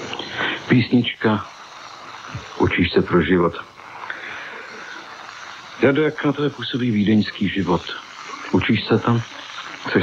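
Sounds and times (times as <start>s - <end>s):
man speaking: 2.4s - 3.7s, 5.8s - 10.0s.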